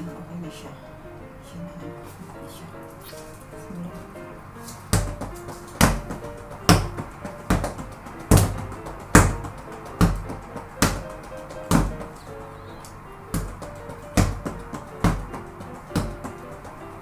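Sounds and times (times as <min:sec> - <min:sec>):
background music: 0:00.0 - 0:17.0
fists punching a punching bag: 0:04.9 - 0:12.1, 0:13.4 - 0:16.5.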